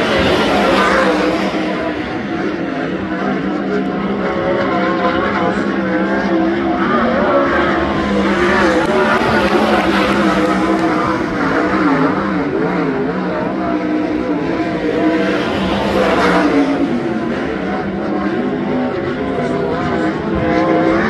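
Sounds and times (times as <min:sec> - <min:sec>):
race car engine running hard: 0:00.0 - 0:21.0.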